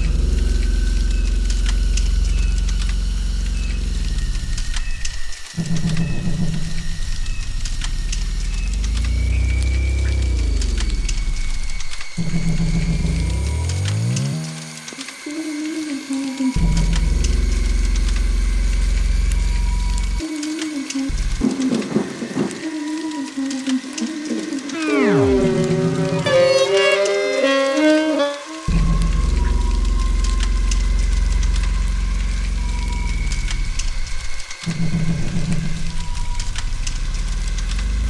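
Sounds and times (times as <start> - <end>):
swooping pitched tones: 0.0 - 37.2
deep low drones: 0.0 - 38.0
wavering tone: 19.5 - 36.8
steady high tone: 21.1 - 30.3.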